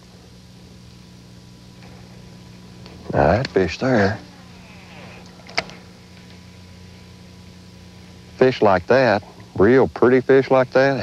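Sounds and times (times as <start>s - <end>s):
electric motor humming: 0.0s - 10.9s.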